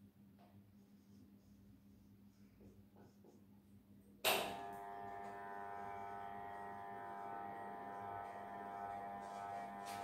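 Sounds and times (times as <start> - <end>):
steady buzzing whistle-like tone: 4.9 - 10.0.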